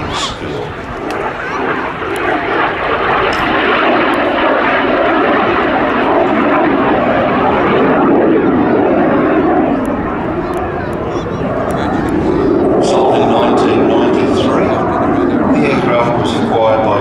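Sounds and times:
loud steady jet noise: 0:00.0 - 0:17.0.

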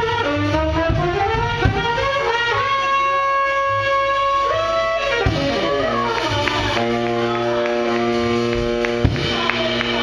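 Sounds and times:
live band playing: 0:00.0 - 0:10.0.

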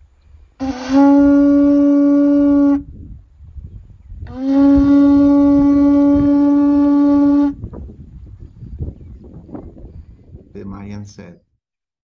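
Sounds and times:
conch shell trumpet blasts: 0:00.6 - 0:03.0, 0:04.3 - 0:07.6.

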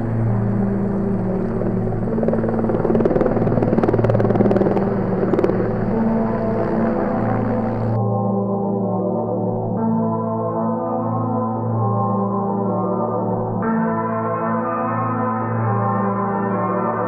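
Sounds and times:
helicopter rotor chopping: 0:00.0 - 0:08.0
background music drone: 0:00.0 - 0:17.0.

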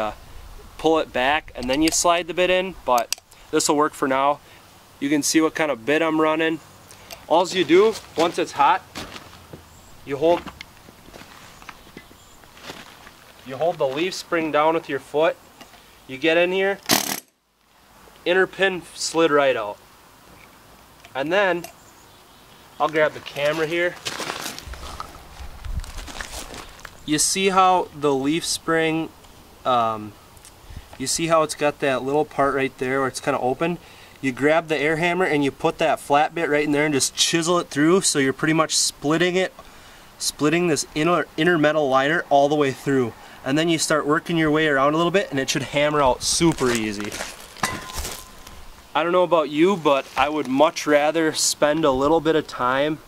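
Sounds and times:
footsteps on gravel: 0:07.3 - 0:14.3, 0:22.8 - 0:27.1, 0:45.6 - 0:48.8, 0:49.6 - 0:50.8.

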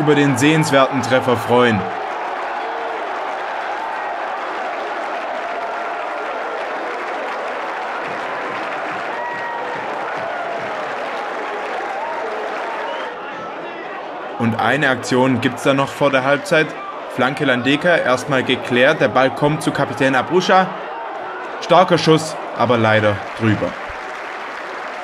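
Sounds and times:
stadium crowd clapping and cheering: 0:00.0 - 0:25.0.

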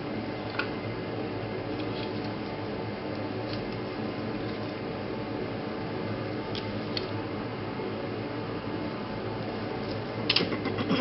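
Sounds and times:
mechanical hum with hiss: 0:00.0 - 0:11.0.

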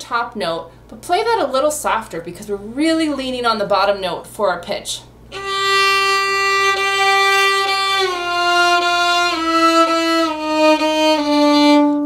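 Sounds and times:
violin playing octave double stops: 0:05.3 - 0:12.0.

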